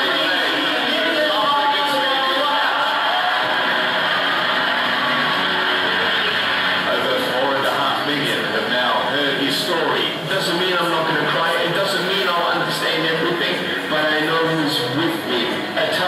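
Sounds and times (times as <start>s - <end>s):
background music over loudspeakers: 0.0s - 16.0s
indistinct voices: 0.0s - 16.0s.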